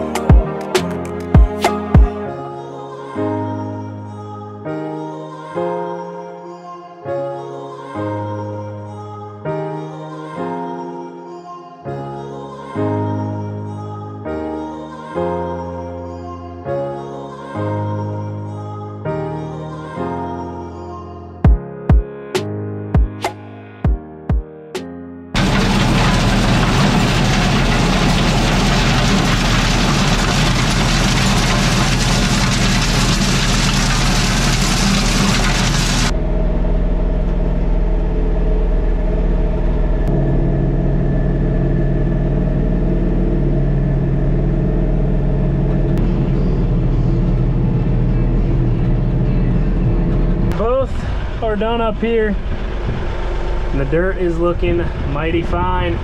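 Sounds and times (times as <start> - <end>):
diesel tractor engine under load: 25.4 - 56.0
loud even rushing noise: 49.9 - 56.0.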